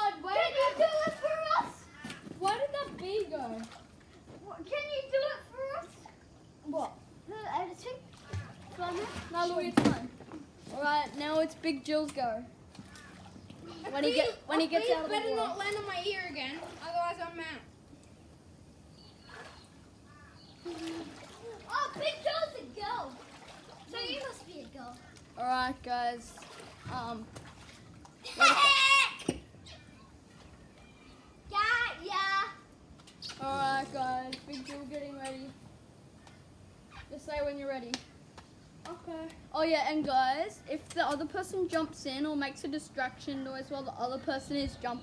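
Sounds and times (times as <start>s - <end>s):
children calling out: 0.0s - 3.0s, 20.6s - 23.2s, 28.2s - 30.2s
child calling: 28.3s - 30.1s.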